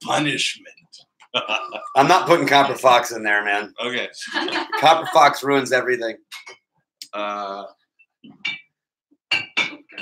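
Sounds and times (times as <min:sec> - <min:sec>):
glass bottles clinking: 0:08.3 - 0:10.0.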